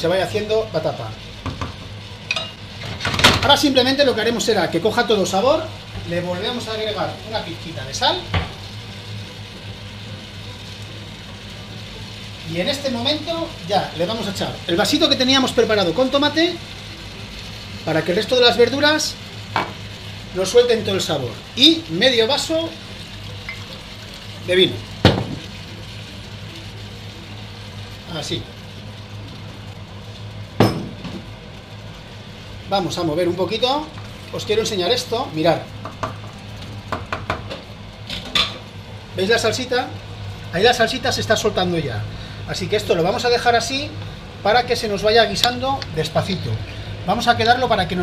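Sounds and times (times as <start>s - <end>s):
low mechanical hum: 0.0s - 48.0s
vegetables sizzling in a frying pan: 0.0s - 48.0s.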